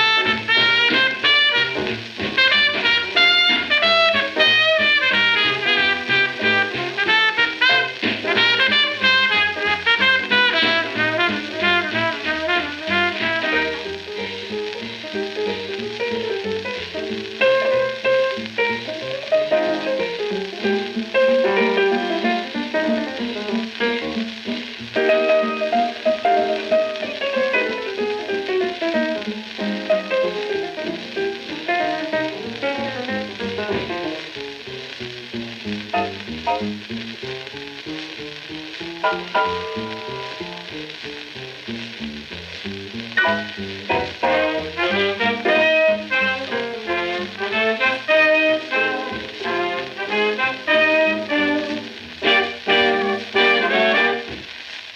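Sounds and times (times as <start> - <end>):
record surface hiss: 0.0 - 54.9
swing jazz combo playing: 0.0 - 54.9.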